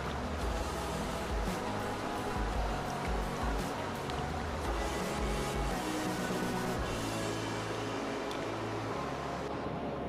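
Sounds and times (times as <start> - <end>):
stream flowing over rocks: 0.0 - 10.0.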